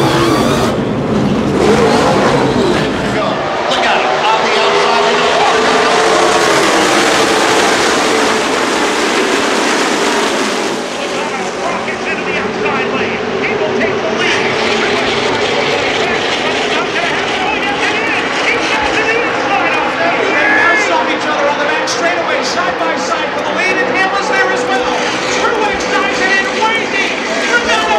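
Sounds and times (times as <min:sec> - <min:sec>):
race car engines passing: 0:00.0 - 0:27.9
spectators' voices: 0:01.5 - 0:27.9.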